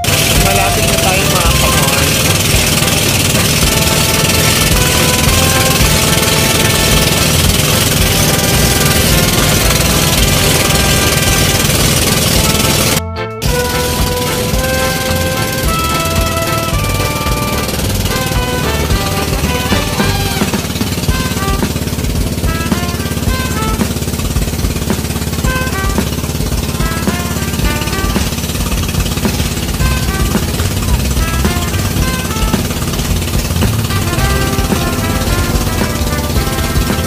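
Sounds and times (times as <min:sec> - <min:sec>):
background music: 0:00.0 - 0:37.0
boat engine knocking: 0:00.0 - 0:37.0.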